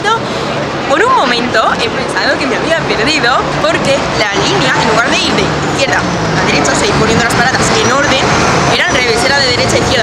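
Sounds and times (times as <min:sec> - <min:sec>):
city street traffic: 0:00.0 - 0:10.0
woman talking: 0:00.0 - 0:10.0.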